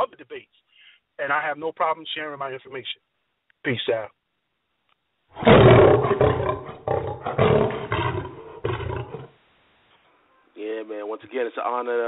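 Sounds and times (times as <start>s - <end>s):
loud animal-like roar: 5.4s - 9.3s.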